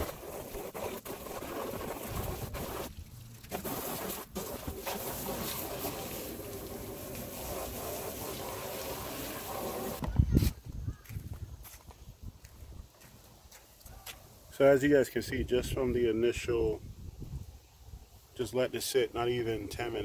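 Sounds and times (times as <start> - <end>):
hose spraying water on plastic: 0.0 - 10.5.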